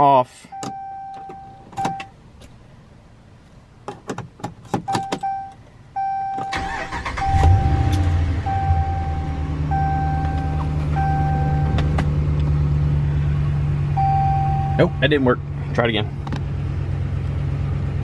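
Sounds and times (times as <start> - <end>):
dashboard warning chime beeping: 0.4 - 2.1, 4.8 - 11.8, 13.9 - 15.1
engine cranking and idling: 6.4 - 14.3.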